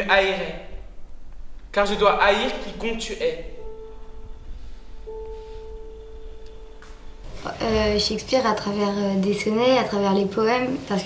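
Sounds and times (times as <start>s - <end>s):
pure steady musical tone: 0.0s - 9.9s.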